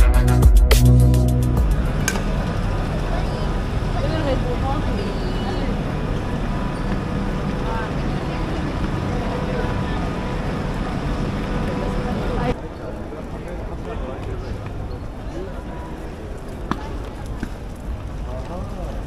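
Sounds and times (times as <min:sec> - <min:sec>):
steady train hum: 0:01.2 - 0:13.7
people chattering: 0:01.7 - 0:19.0.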